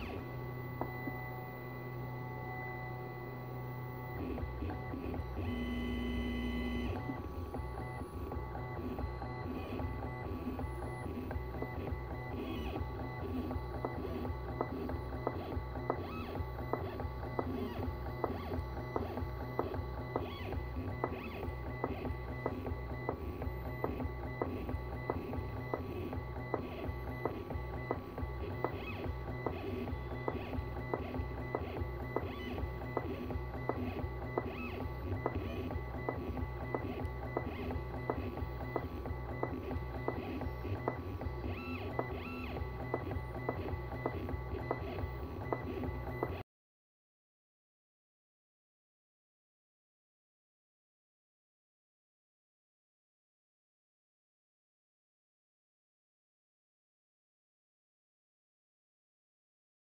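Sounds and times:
pen plotter whirs and ticks: 0:00.0 - 0:46.4
stepper motor whine: 0:00.0 - 0:46.4.

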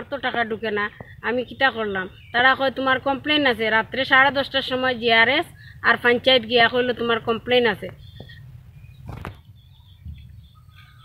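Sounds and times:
woman speaking: 0:00.0 - 0:08.0.

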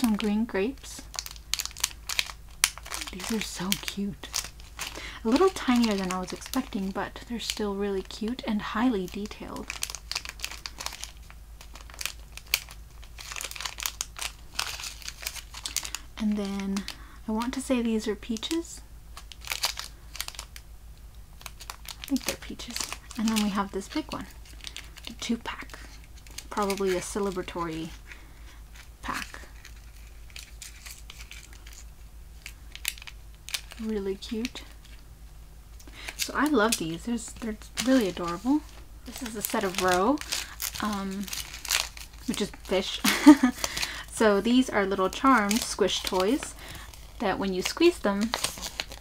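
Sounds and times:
plastic bag crinkling: 0:00.0 - 0:20.6, 0:21.3 - 0:49.0.

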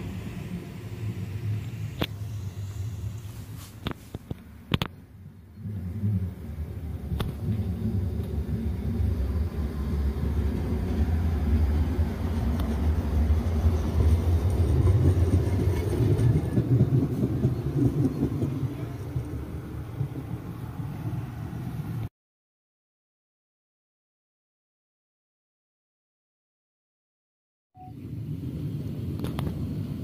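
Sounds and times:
electric tram rumbling past: 0:00.0 - 0:22.1, 0:28.0 - 0:30.0.

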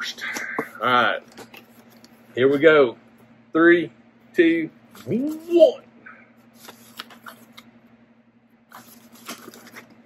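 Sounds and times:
cardboard scraping and rustling: 0:08.7 - 0:10.0.

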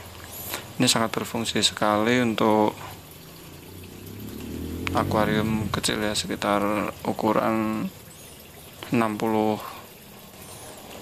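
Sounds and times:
aquarium water bubbling: 0:00.0 - 0:11.0.

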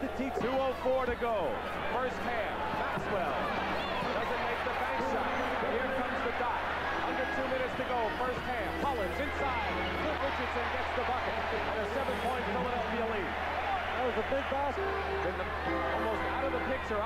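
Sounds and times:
arena crowd din: 0:00.0 - 0:17.0.

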